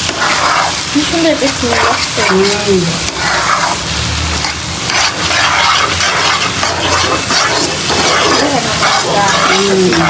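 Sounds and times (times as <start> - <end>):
onions sizzling in a wok: 0.0 - 10.0
spatula scraping wok: 0.0 - 10.0.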